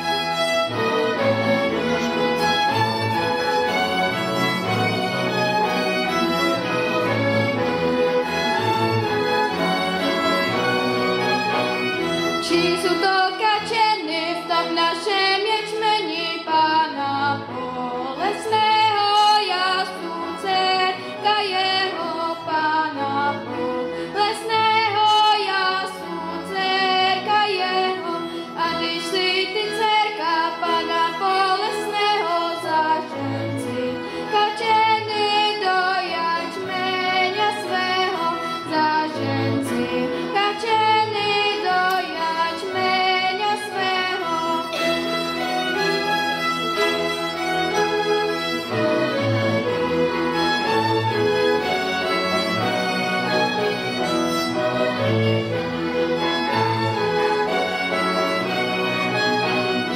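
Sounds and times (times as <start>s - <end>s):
violins: 0.0s - 59.9s
girl singing folk song: 12.4s - 44.8s.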